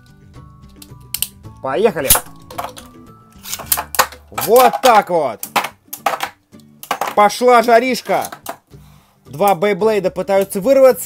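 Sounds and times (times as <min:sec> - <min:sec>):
ripcord launch rip and clack: 0:03.4 - 0:05.7.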